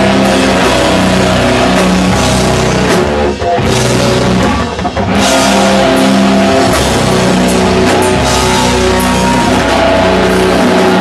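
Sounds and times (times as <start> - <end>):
distorted guitar and bass: 0.0 - 11.0
drums and cymbal crashes: 0.0 - 11.0.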